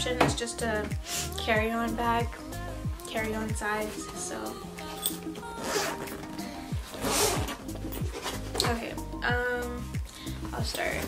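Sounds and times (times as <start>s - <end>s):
background music with steady beat: 0.0s - 11.0s
bag zipper being pulled open: 5.5s - 8.6s.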